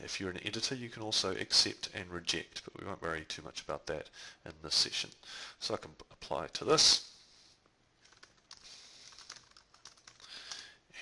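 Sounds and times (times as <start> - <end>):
typing on computer keyboard: 8.0 - 10.6.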